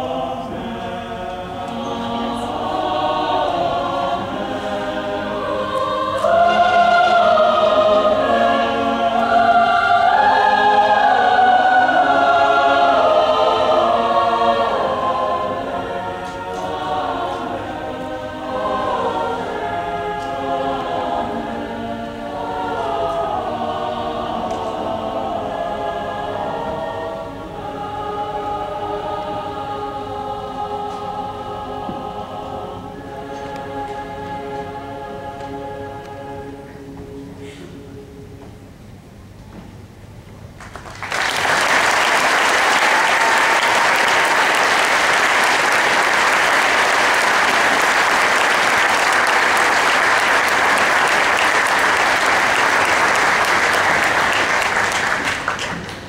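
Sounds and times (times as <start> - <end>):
large choir singing: 0.0 - 38.5, 41.0 - 56.0.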